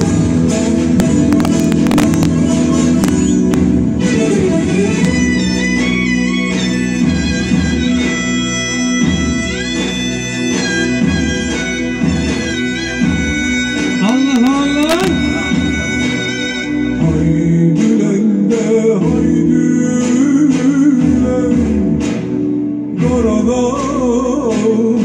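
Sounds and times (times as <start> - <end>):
plucked strings: 0.0 - 25.0.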